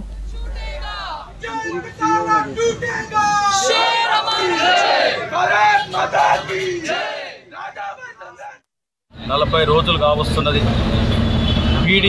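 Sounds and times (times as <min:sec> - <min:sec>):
protesters shouting slogans: 0:00.2 - 0:08.6.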